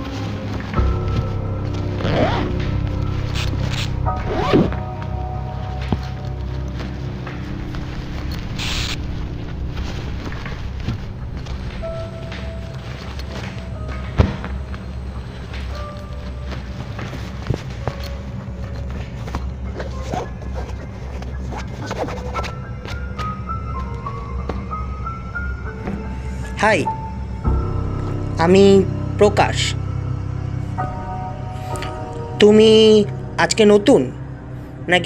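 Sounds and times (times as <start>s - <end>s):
soft handling rustles: 0.0s - 26.5s
steady low hum: 0.0s - 32.5s
background music of held tones: 0.0s - 35.0s
zipper pulled open: 2.0s - 2.6s, 3.2s - 4.8s, 8.4s - 9.0s, 19.7s - 22.6s.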